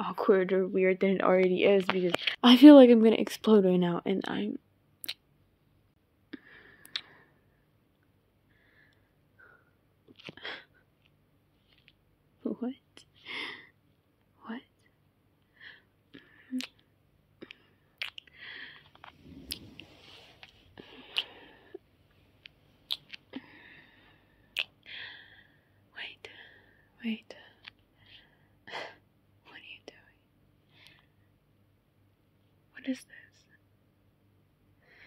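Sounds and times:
mouth clicks: 6.8s - 7.2s, 17.4s - 18.3s, 21.0s - 21.5s
woman whispering: 14.4s - 14.8s, 25.9s - 26.3s, 26.9s - 27.7s, 29.4s - 30.2s, 32.7s - 33.6s.

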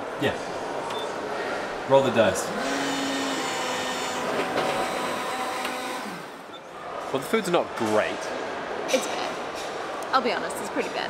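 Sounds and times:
coffee machine humming: 2.4s - 6.5s.

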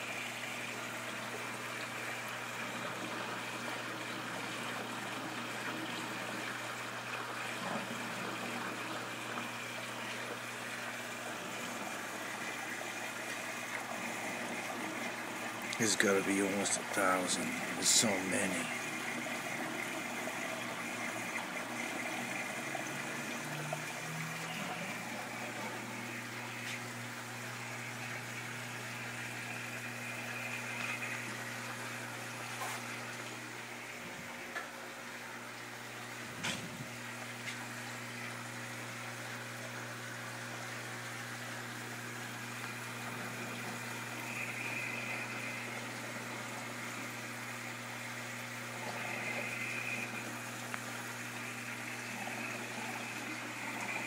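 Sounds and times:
bubbling water from filters: 0.0s - 54.0s.

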